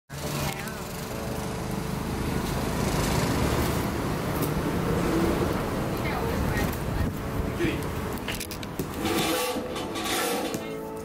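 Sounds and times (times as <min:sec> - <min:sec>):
vehicle and motorcycle engines rumbling: 0:00.1 - 0:10.9.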